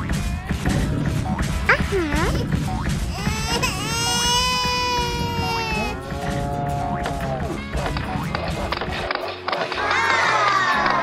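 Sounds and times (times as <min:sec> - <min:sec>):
cartoon baby crying: 0:03.1 - 0:06.0.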